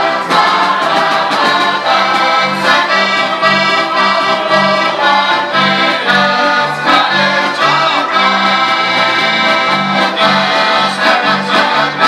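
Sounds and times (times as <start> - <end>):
button accordions playing folk music: 0.0 - 12.0
group singing in chorus: 0.0 - 12.0.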